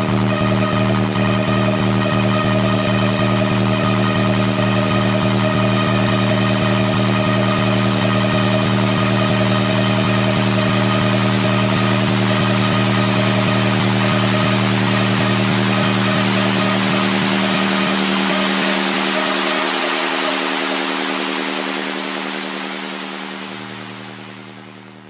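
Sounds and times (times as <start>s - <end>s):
held synth chord: 0.0s - 25.0s
low bass: 0.0s - 25.0s.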